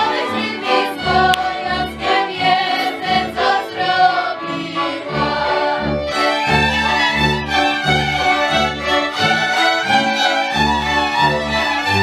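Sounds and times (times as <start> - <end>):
fiddles playing folk tune: 0.0 - 12.0.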